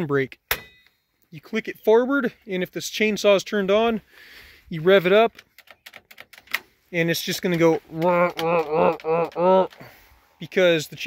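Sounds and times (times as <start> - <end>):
man imitating chainsaw revving: 7.9 - 9.8.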